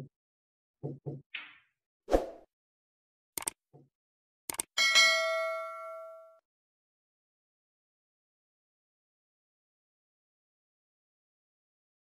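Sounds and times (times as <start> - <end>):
notification bell ding: 4.8 - 6.4.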